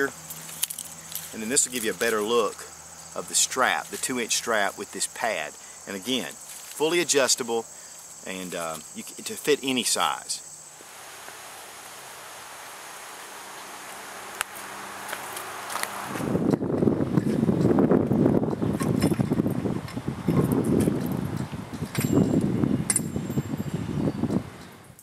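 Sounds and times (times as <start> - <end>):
outdoor hiss: 0.0 - 16.5
wind buffeting microphone: 15.1 - 25.0
keys clinking in door lock: 21.8 - 23.8.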